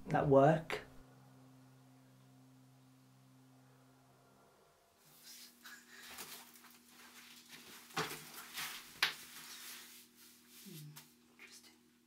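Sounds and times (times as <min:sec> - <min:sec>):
faint steady hum: 0:00.0 - 0:12.0
rustling and scuffing on floor: 0:05.1 - 0:11.2.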